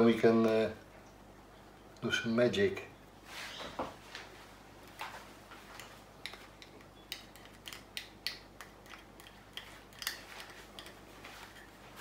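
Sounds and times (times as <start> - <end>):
low room hum: 0.0 - 12.0
stir stick ticking on plastic cups: 5.7 - 11.1.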